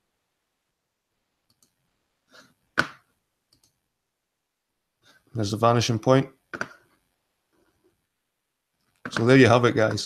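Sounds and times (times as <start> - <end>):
computer mouse clicking: 1.4 - 3.8, 6.5 - 6.9.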